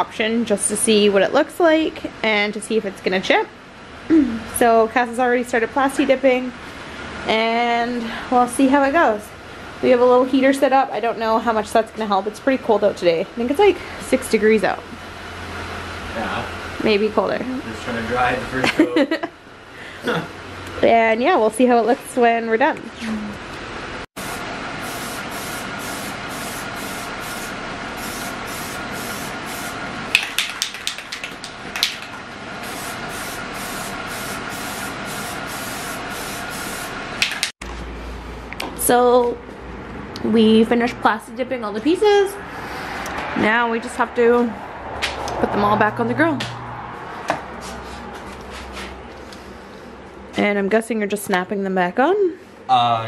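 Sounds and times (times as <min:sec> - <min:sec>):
steady low hum: 0:00.0 - 0:30.2
aerosol can spraying hiss: 0:24.2 - 0:29.8, 0:32.6 - 0:36.9.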